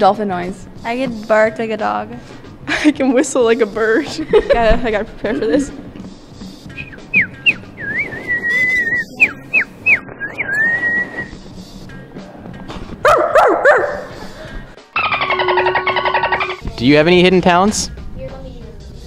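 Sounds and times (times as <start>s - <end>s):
person whistling bird-like chirps: 6.7s - 11.3s.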